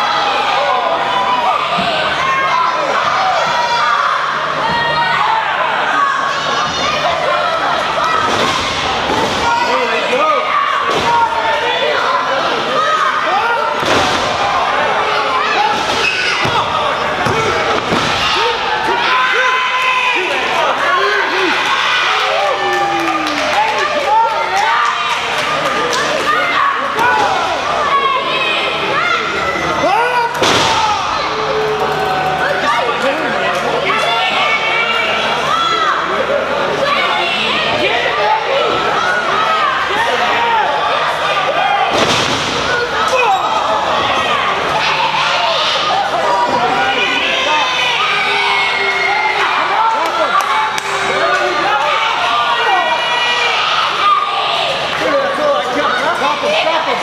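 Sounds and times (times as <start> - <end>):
crowd shouting: 0.0 - 57.0.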